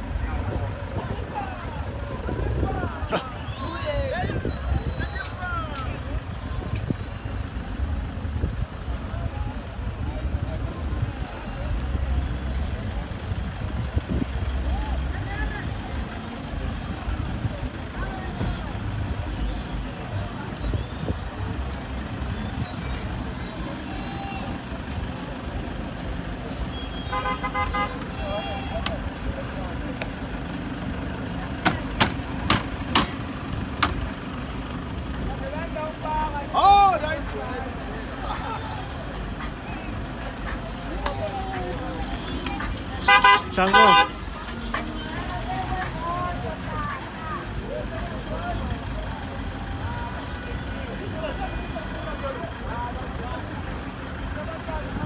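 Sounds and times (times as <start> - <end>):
crowd voices: 0.0 - 55.0
minibus engines running: 0.0 - 55.0
horn toot: 26.7 - 29.0, 42.1 - 44.8.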